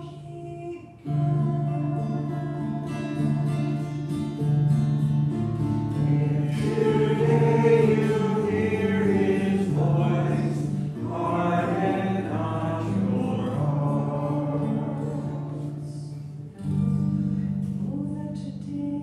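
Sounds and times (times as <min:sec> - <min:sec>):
voices singing slow lines: 0:00.0 - 0:04.1, 0:05.8 - 0:16.6
acoustic guitar: 0:00.0 - 0:19.0.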